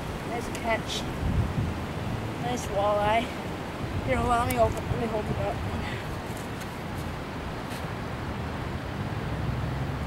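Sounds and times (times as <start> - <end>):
low outdoor background noise: 0.0 - 10.0.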